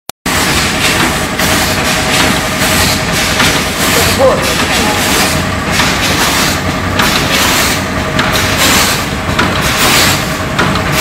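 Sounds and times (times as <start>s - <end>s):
bottling machine din: 0.3s - 11.0s.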